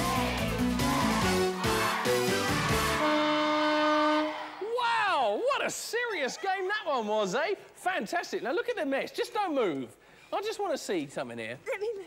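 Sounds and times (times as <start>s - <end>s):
voices shouting: 0.0s - 3.3s
game show buzzer: 1.2s - 4.4s.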